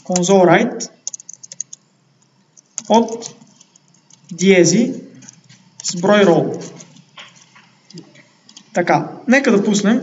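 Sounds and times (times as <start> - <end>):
computer keyboard typing: 1.0 - 4.5, 5.1 - 8.8.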